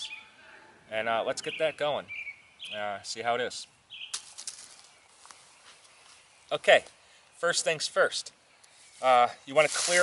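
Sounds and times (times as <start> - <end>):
woodland ambience: 0.0 - 10.0
sharp clicks or rustles: 4.1 - 5.0.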